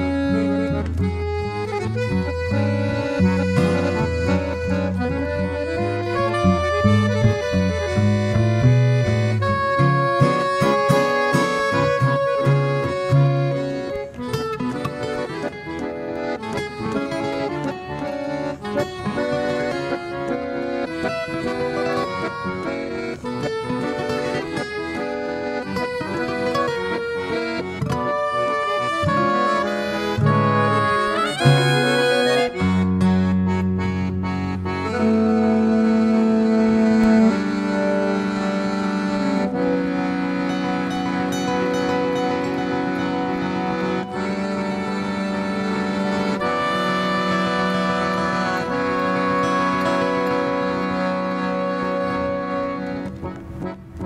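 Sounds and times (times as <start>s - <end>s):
button accordion: 0.0s - 54.0s
guitar: 0.0s - 54.0s
soprano saxophone: 28.0s - 38.3s, 39.1s - 53.0s.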